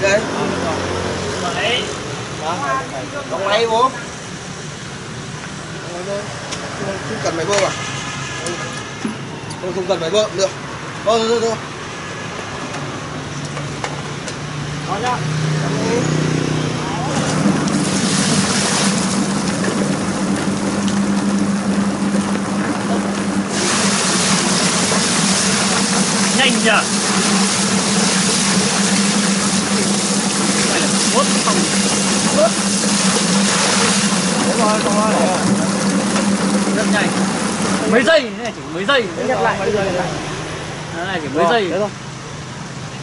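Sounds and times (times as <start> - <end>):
plucking machine motor hum: 17.0 - 38.6
water spraying hiss: 17.6 - 19.6, 23.5 - 37.7.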